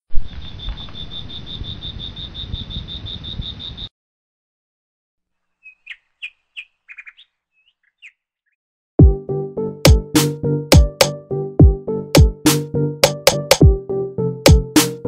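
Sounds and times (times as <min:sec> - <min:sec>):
faint bird chirps: 0:00.1 - 0:03.9, 0:05.4 - 0:08.6.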